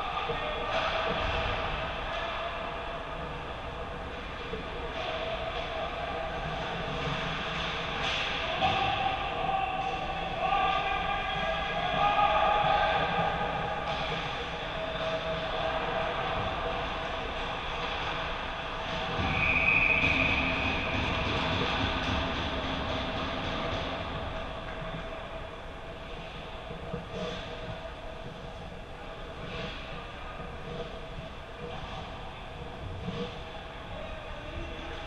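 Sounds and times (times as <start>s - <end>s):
noise of play in large hall: 0.0s - 35.0s.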